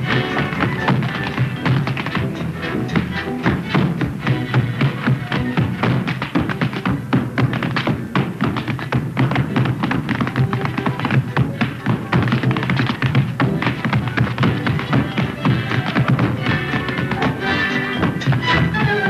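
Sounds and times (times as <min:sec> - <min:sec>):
dance music with steady beat: 0:00.0 - 0:19.0
tap-dancing on stage floor: 0:00.0 - 0:19.0.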